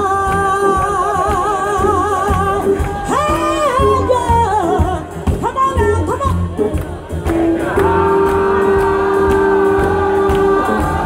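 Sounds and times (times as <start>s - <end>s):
soul band playing: 0.0s - 11.0s.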